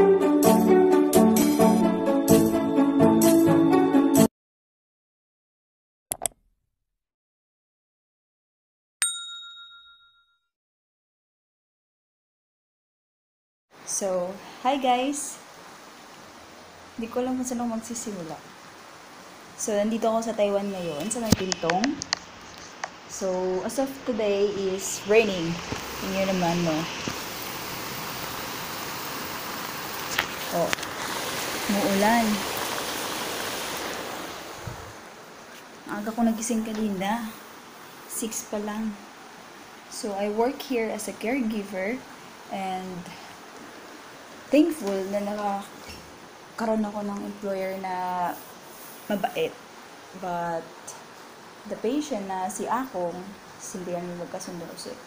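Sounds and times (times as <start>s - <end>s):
bell ding: 9.0s - 10.5s
rain falling: 13.8s - 55.0s.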